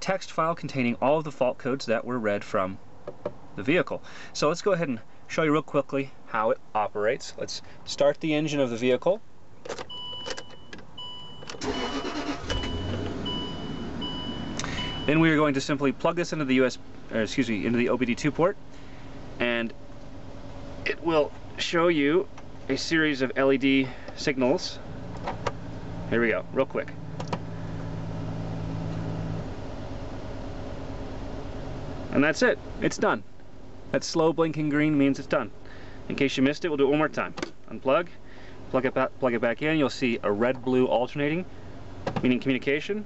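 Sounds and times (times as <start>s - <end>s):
car engine cranking and idling: 9.6s - 33.9s
electronic warning tone: 11.6s - 15.2s.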